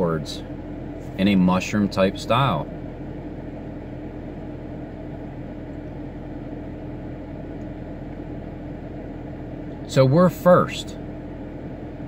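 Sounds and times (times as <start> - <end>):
car cabin hum and hiss: 0.0 - 12.0.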